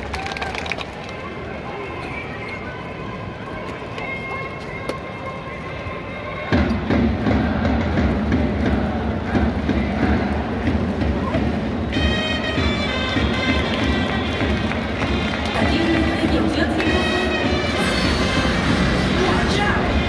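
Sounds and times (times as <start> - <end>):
stadium crowd murmuring: 0.0 - 20.0
drums beating steady rhythm: 6.5 - 20.0
fans chanting together: 6.9 - 11.2.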